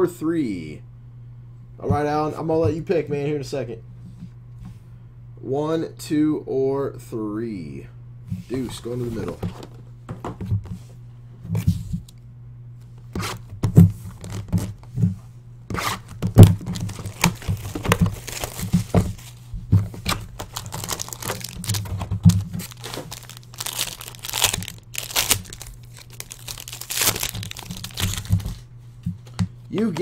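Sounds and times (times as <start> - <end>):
steady low hum: 0.0 - 30.0
packaging torn and crinkled: 14.2 - 14.8, 16.0 - 19.0, 19.9 - 28.6.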